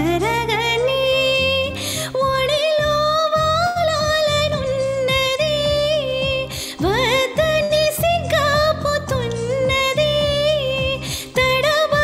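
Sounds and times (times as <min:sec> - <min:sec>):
backing track with low beat: 0:00.0 - 0:12.0
woman singing: 0:00.0 - 0:12.0.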